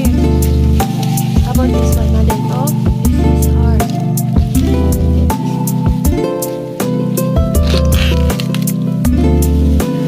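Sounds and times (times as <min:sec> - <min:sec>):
plucked string music with beat: 0:00.0 - 0:10.0.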